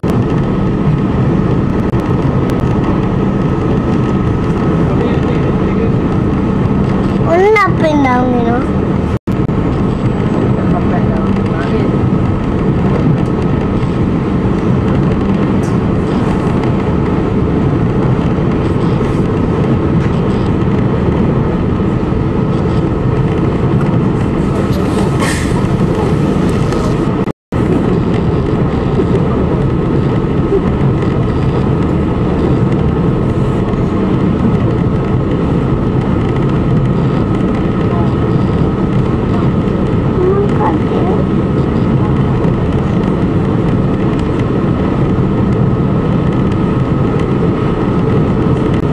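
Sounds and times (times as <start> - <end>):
boat engine drone: 0.0 - 48.9.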